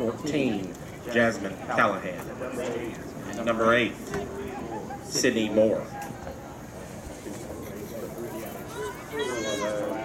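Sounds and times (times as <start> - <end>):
distant voices chattering: 0.0 - 10.0.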